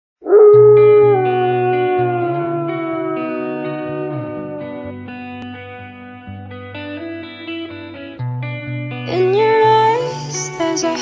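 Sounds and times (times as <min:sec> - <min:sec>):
wolf howling: 0:00.2 - 0:05.4
music: 0:00.3 - 0:11.0.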